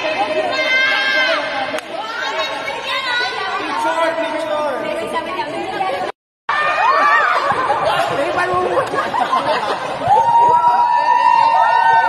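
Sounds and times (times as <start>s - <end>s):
group of people chattering excitedly: 0.0s - 10.2s.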